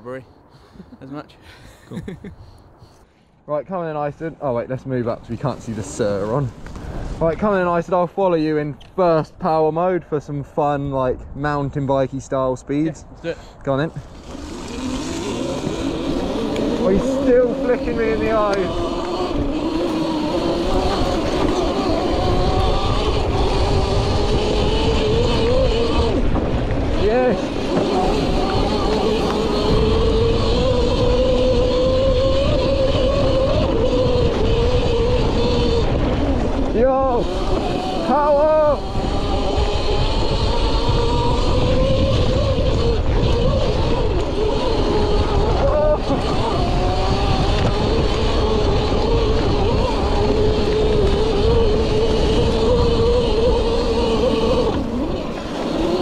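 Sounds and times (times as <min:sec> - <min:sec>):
electric motorbike motor whining: 0:14.0 - 0:56.0.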